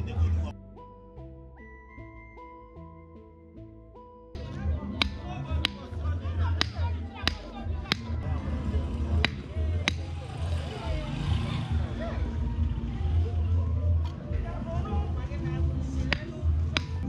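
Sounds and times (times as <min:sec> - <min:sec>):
club pounding stick into metal pipe: 0:05.0 - 0:06.0, 0:06.6 - 0:08.2, 0:09.2 - 0:10.1, 0:16.0 - 0:17.0.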